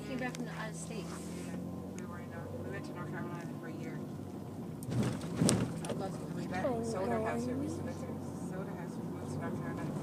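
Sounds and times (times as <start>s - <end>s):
car engine drone: 0.0s - 10.0s
road noise: 0.0s - 10.0s.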